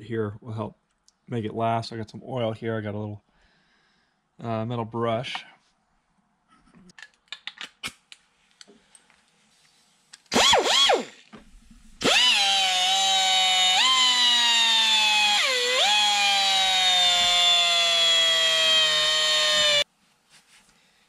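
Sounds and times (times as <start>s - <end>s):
pneumatic die grinder whining: 10.3s - 11.3s, 12.0s - 19.8s.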